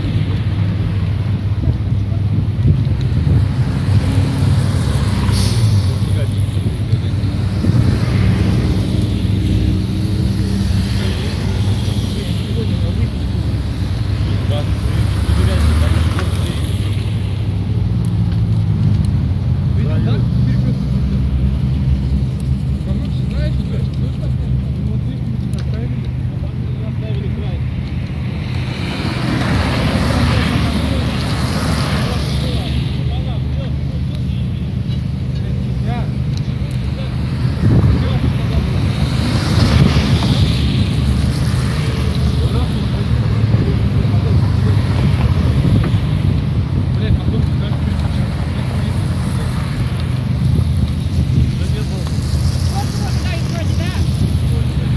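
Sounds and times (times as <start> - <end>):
car and van engines running: 0.0 - 54.9
loud vehicle passing: 2.7 - 25.1, 26.9 - 54.9.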